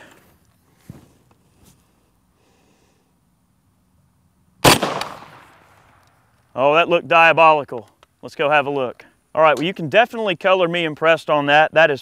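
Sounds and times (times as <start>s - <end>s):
rifle shot with echo: 4.6s - 6.0s.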